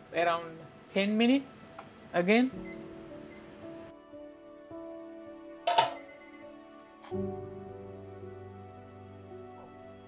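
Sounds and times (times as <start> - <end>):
soft background music: 0.0 - 10.0
metal pot lid clanking: 5.7 - 6.2.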